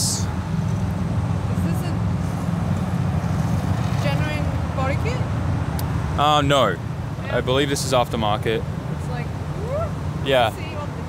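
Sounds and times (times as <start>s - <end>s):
traffic rumble and car engines: 0.0s - 11.0s.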